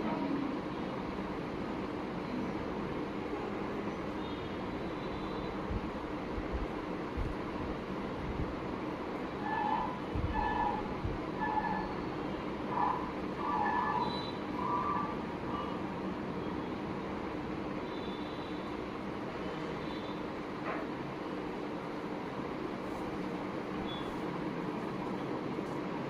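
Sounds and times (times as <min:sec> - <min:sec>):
room hum: 0:00.0 - 0:26.0.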